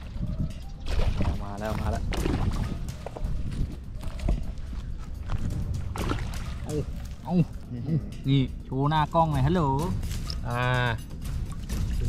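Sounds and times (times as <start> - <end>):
fish splashing in water: 0.8 - 3.2, 5.8 - 7.0.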